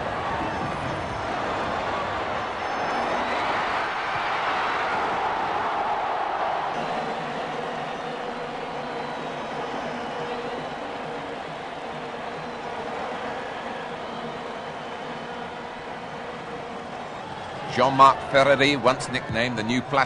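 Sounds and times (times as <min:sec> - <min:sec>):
stadium crowd noise: 0:00.0 - 0:20.0.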